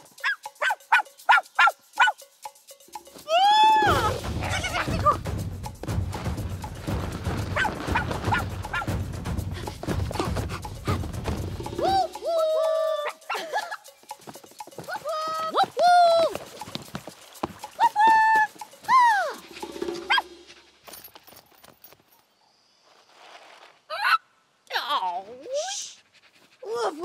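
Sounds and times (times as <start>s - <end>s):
cartoon gibberish vocalizing: 3.8s - 5.2s
cartoon dog whining: 11.8s - 13.6s.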